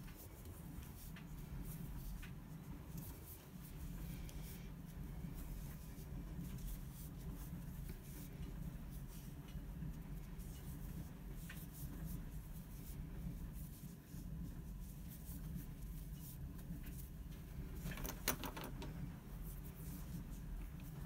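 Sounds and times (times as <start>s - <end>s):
low steady hum: 0.0s - 21.0s
yarn rustling: 0.0s - 21.0s.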